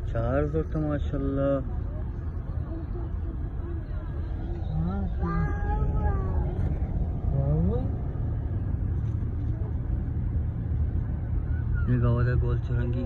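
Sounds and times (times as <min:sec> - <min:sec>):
car driving rumble from inside: 0:00.0 - 0:13.0.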